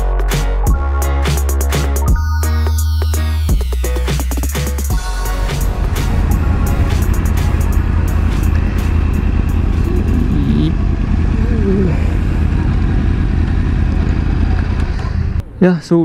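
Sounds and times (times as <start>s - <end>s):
motorcycle engine low rumble: 4.9s - 15.5s.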